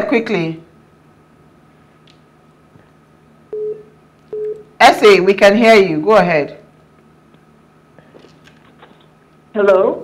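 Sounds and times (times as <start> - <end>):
faint phone line hum: 3.4 - 4.8
telephone busy tone beep: 3.5 - 4.6.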